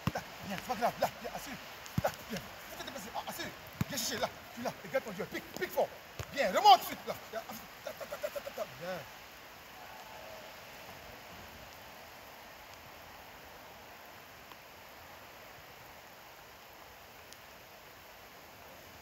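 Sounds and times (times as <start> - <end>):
man calling short syllables: 0.0 - 9.1
outdoor background noise: 0.0 - 19.0.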